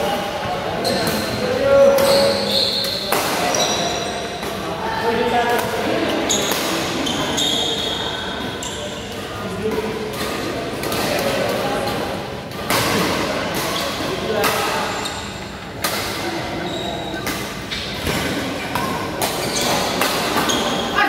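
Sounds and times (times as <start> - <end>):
chatter of voices in hall: 0.0 - 21.0
shoe squeaks on court floor: 0.8 - 4.3, 6.3 - 8.8, 16.6 - 17.4, 19.3 - 21.0.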